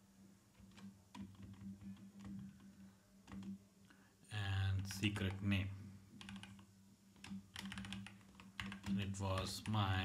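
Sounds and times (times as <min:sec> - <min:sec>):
keyboard keystrokes: 0:00.6 - 0:03.6, 0:06.2 - 0:09.8.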